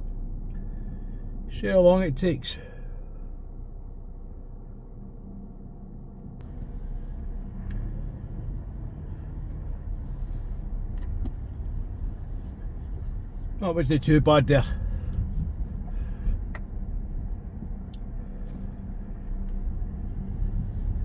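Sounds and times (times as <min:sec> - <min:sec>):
car engine idling: 0:00.0 - 0:21.0
road noise: 0:00.0 - 0:21.0.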